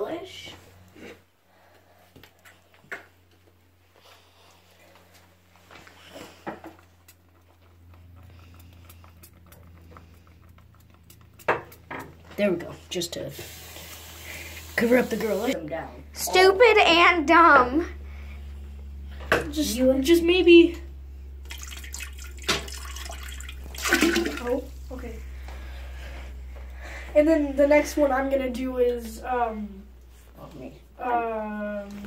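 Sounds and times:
steady low hum: 0.0s - 32.0s
hand splashing in toilet water: 21.4s - 24.8s.

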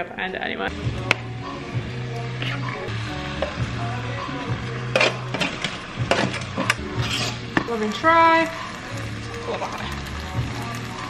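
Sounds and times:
background music: 0.0s - 11.0s
fork scraping baking tray: 4.9s - 7.4s.

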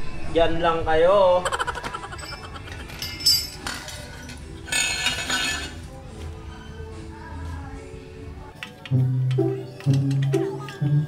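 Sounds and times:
metal hand tools clinking: 2.0s - 5.9s.

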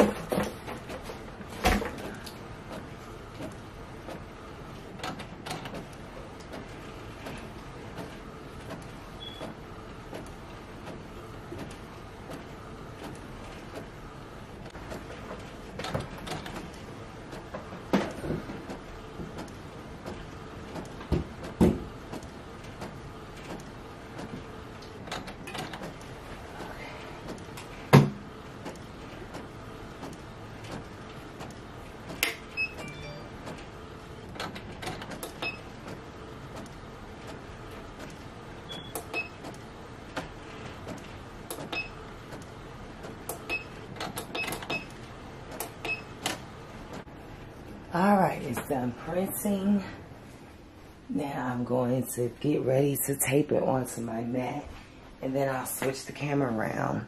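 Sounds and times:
inkjet printer running: 0.0s - 47.7s.

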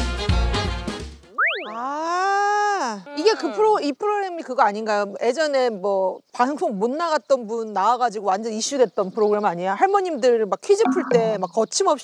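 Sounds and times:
comic upward slide: 10.8s - 11.3s
long pitched tone: 10.9s - 11.3s.

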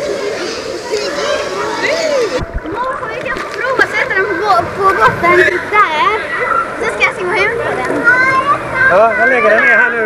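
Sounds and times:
children talking and calling out: 0.0s - 10.0s.

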